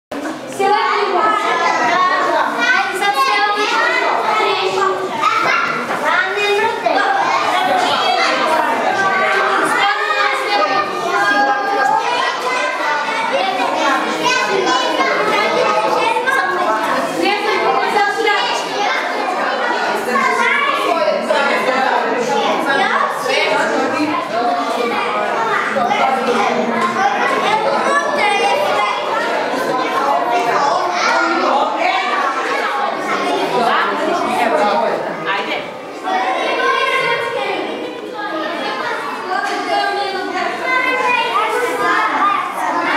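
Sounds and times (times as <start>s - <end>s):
children chattering and calling out: 0.1s - 42.9s.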